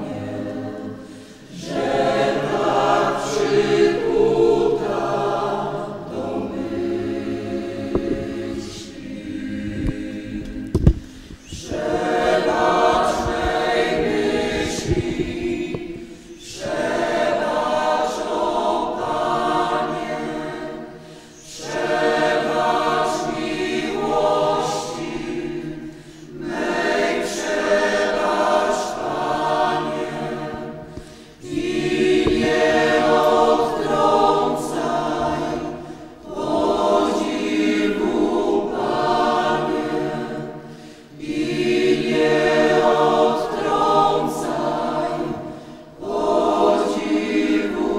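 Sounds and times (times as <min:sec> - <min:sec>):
church choir singing a hymn: 0:00.0 - 0:47.9.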